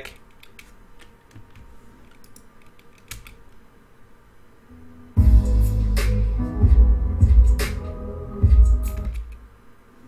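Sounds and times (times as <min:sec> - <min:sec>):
keyboard and mouse clicks: 0:00.0 - 0:03.6, 0:08.9 - 0:09.4
faint steady hum: 0:00.0 - 0:10.0.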